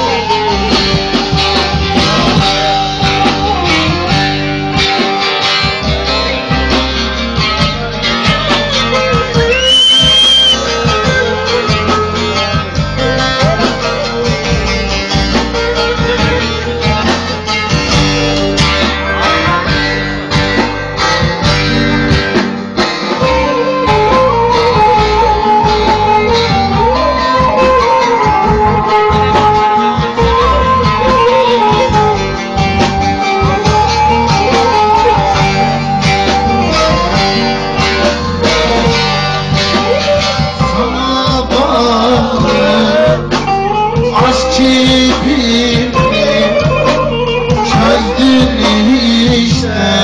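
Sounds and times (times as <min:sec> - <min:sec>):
folk band playing: 0:00.0 - 0:50.0
rising whistle: 0:09.5 - 0:10.6.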